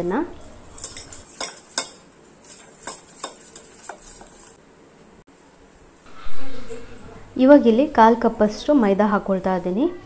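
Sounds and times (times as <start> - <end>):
spoon stirring in metal bowl: 0.6 - 4.6.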